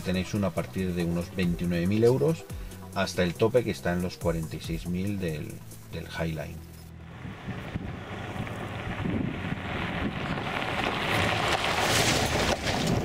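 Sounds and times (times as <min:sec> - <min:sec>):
tyres on gravel: 0:00.0 - 0:13.0
pickup truck engine passing: 0:05.6 - 0:13.0.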